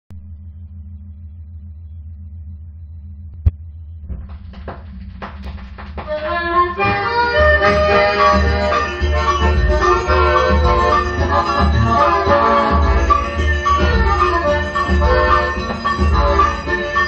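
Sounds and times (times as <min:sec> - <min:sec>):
turntable hum: 0:00.1 - 0:17.0
record music with percussion: 0:03.4 - 0:17.0.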